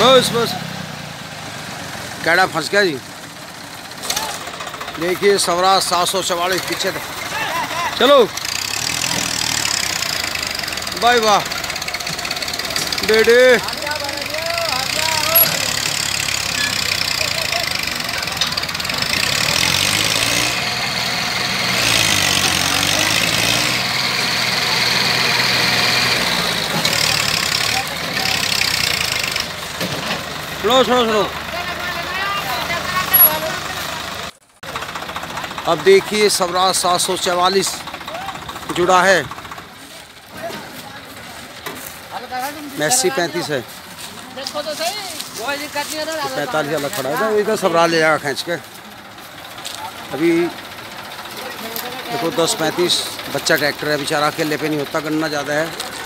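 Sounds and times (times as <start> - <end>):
outdoor background noise: 0.0 - 56.0
tractor engine straining: 0.0 - 56.0
person shouting: 38.1 - 38.4.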